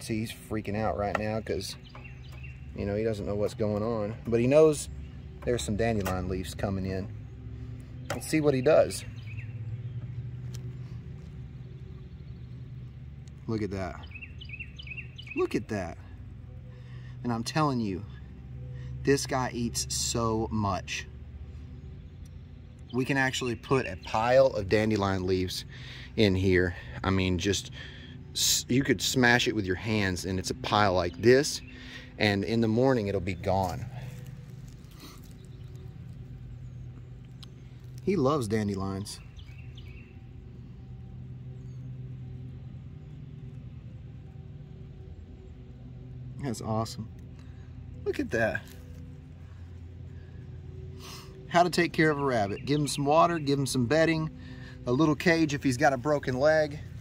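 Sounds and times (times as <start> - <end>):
low mechanical hum: 0.0 - 57.0.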